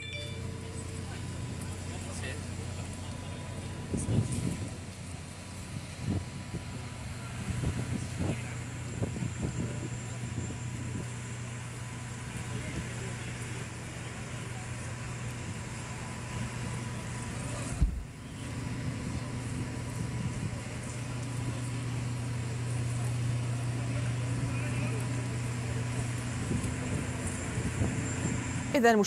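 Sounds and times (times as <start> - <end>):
faint voices: 19.1 - 29.0.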